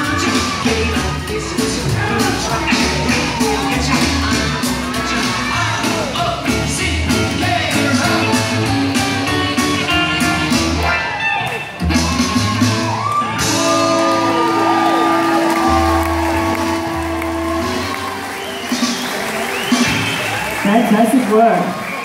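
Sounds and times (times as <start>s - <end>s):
person singing: 0.0s - 10.6s
rock and roll band playing: 0.0s - 20.6s
crowd shouting and cheering: 0.0s - 22.0s.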